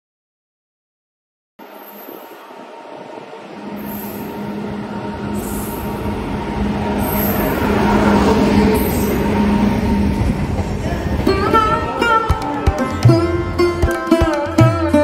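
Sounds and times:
wheels rumbling on rails: 1.6 - 13.6
locomotive hum: 1.6 - 13.8.

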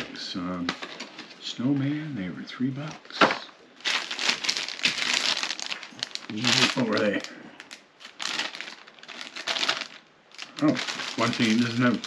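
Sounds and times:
plastic package crinkling: 3.8 - 12.0
person murmuring: 10.5 - 12.0.

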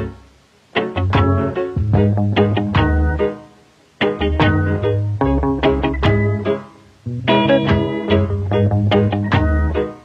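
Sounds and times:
plucked guitar notes: 0.0 - 3.4, 4.0 - 10.0
deep bass line: 1.0 - 3.2, 7.1 - 9.8.

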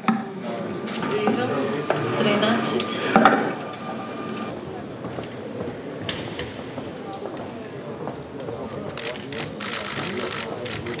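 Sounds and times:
indistinct background voices: 0.0 - 11.0.

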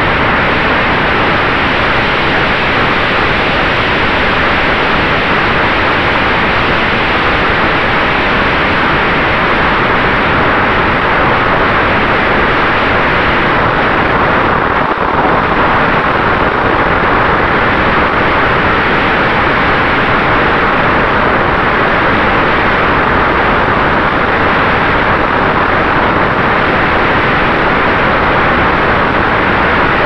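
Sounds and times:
electric ducted fans running: 0.0 - 30.0
faint steady whine: 0.0 - 30.0.

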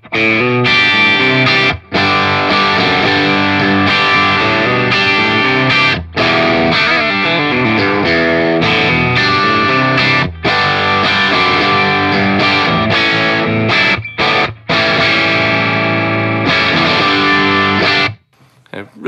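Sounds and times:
overdriven electric guitar: 0.0 - 18.2.

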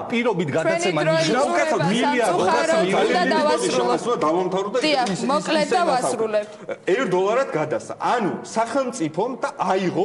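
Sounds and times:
people talking over one another: 0.0 - 6.4.

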